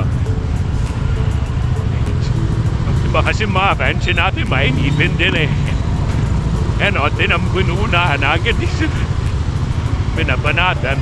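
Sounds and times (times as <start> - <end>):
motorcycle traffic rumble: 0.0 - 11.0
music with ticking beat: 0.0 - 11.0.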